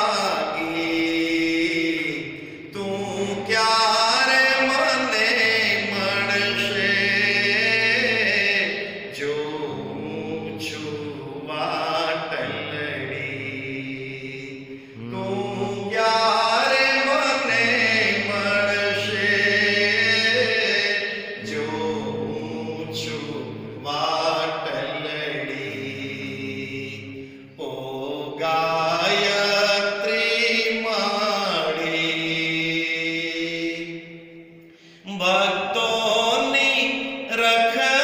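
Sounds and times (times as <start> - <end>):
devotional chanting: 0.0 - 38.0.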